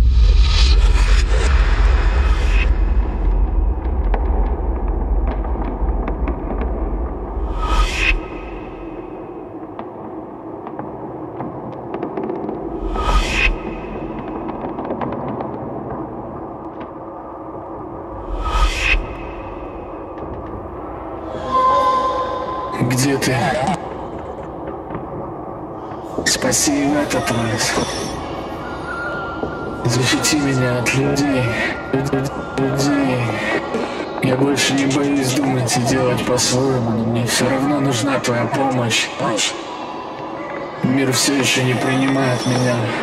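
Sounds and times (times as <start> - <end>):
deep sub-bass rumble: 0.0 - 9.4
crackles and clicks: 0.0 - 43.0.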